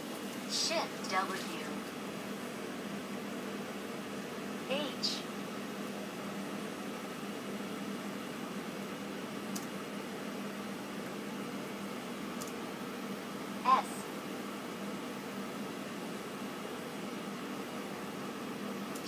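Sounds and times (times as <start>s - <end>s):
background hiss and hum: 0.0s - 19.0s.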